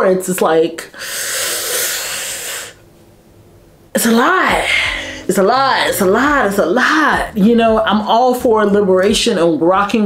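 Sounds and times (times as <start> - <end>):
woman hissing breath through teeth: 1.0 - 2.8.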